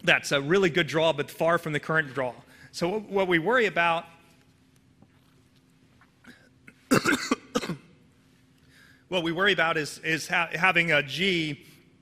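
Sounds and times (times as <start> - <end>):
man coughing: 6.3 - 8.0.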